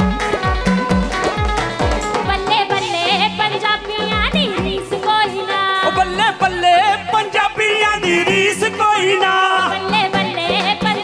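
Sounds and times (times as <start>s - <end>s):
band with steady drum beat: 0.0s - 11.0s
person singing with ornamented pitch: 2.2s - 11.0s.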